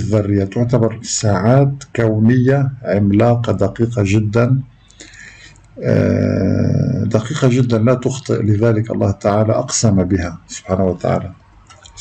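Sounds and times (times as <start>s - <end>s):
quiet breath: 4.7s - 5.8s
man saying ehhh: 5.8s - 7.2s.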